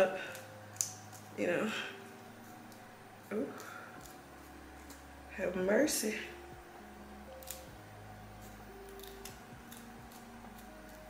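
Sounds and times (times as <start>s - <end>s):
comb clicking through stiff hair: 0.0s - 5.1s, 7.3s - 7.8s, 8.4s - 11.0s
low steady hum: 0.0s - 11.0s.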